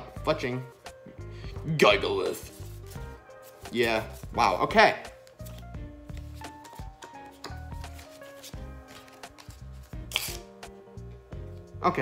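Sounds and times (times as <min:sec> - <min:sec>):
soft background music: 0:00.0 - 0:12.0
trading cards rubbing and flicking: 0:02.2 - 0:04.4, 0:05.1 - 0:10.7.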